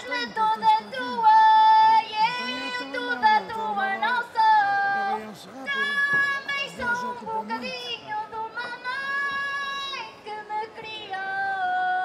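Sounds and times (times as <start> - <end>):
women singing folk song: 5.9 - 12.0.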